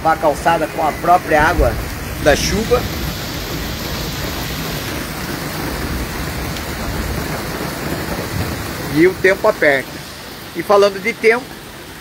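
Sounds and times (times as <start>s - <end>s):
heavy rain on standing water: 0.0s - 12.0s.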